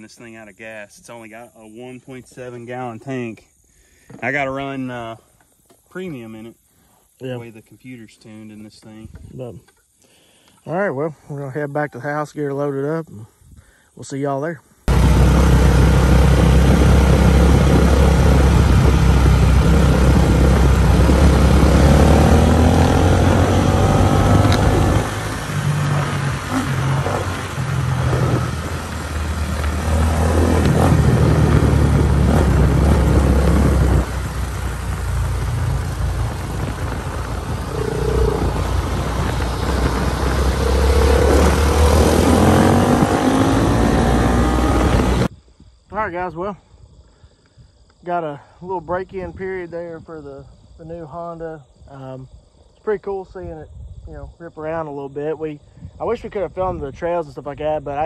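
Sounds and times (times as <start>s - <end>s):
dirt bike engine revving: 14.9s - 45.3s.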